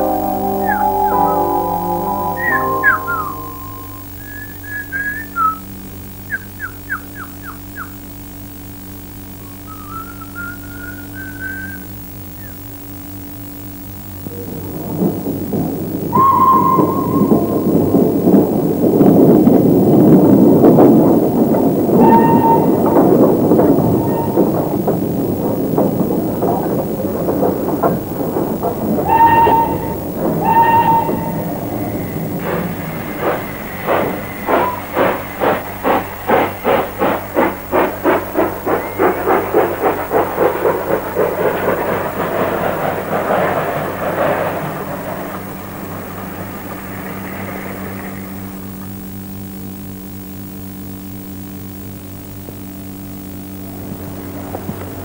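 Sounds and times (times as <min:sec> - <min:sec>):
background music: 0:00.0 - 0:04.0
short pitched calls: 0:00.0 - 0:05.4
bird-like chirps and whistles: 0:00.0 - 0:08.0, 0:09.4 - 0:12.6, 0:16.1 - 0:17.7
loud dense background noise: 0:00.0 - 0:55.0.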